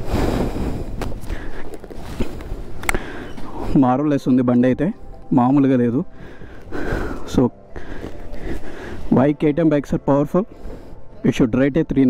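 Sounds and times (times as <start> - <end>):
wind rumbling on microphone: 0.0 - 3.8.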